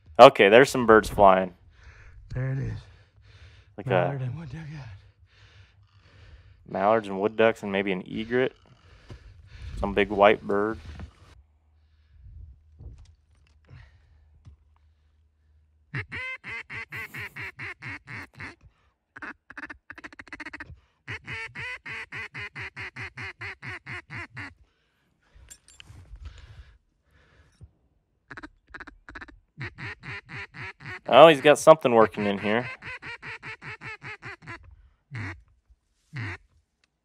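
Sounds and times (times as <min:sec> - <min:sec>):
duck call quacking: 0:15.9 - 0:18.6, 0:19.2 - 0:24.6, 0:28.3 - 0:35.4, 0:36.1 - 0:36.4.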